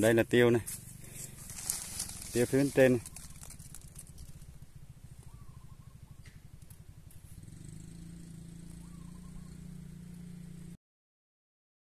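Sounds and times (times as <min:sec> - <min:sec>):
small engine running: 0:00.0 - 0:10.8.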